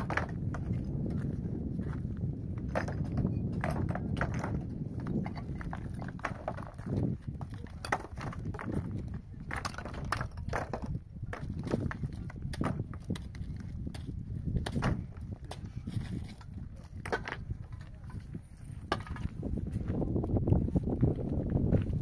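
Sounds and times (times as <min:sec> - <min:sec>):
rocks clacking together: 0:00.0 - 0:01.3, 0:02.6 - 0:19.4.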